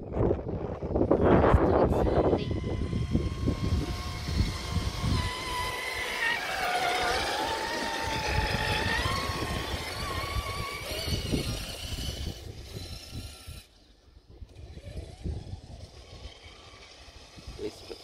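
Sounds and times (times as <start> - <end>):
toy truck motor whining: 1.5 - 18.0.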